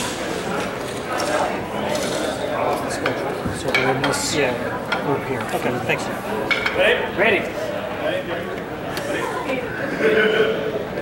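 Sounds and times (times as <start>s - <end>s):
indistinct voices in a hall: 0.0s - 11.0s.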